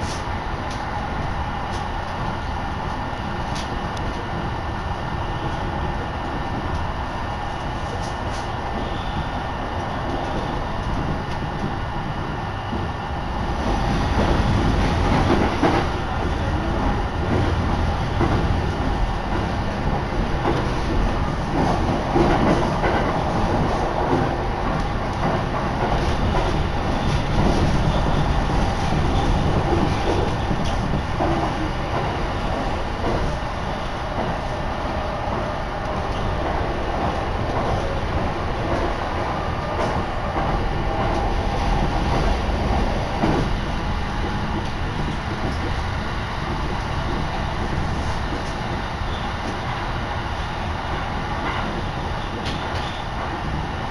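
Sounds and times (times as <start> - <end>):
train wheels rumbling: 0.0 - 53.9.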